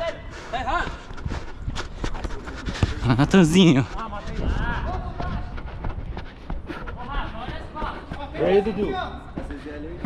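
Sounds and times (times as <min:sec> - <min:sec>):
footsteps on artificial turf: 0:00.0 - 0:10.0.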